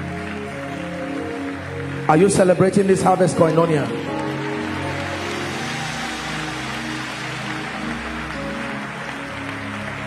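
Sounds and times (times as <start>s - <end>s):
congregation noise in a hall: 0.0s - 10.0s
live worship music: 0.0s - 10.0s.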